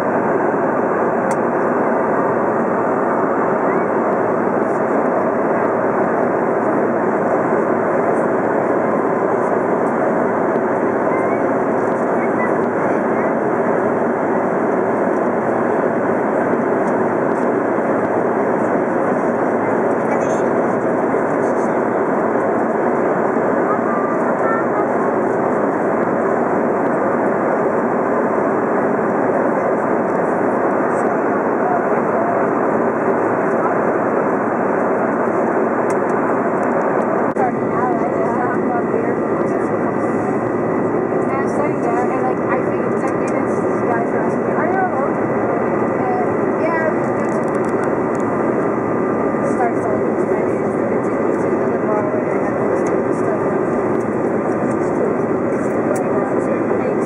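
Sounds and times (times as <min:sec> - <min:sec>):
airliner cabin engine roar: 0:00.0 - 0:57.0.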